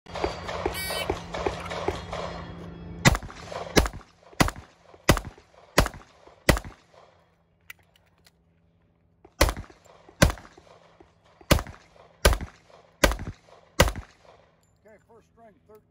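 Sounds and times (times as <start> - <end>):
pistol shots: 0.1 - 7.3, 9.4 - 14.6.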